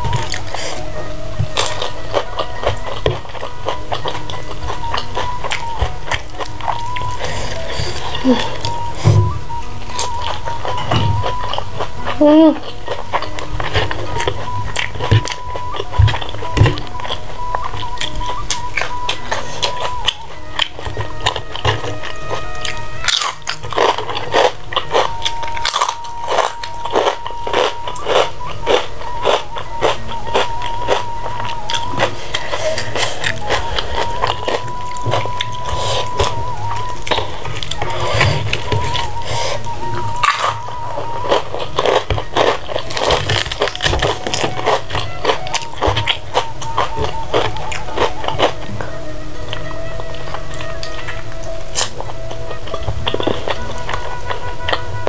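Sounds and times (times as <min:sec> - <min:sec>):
background music: 0:00.0 - 0:55.0
person chewing crunchy food: 0:00.0 - 0:55.0.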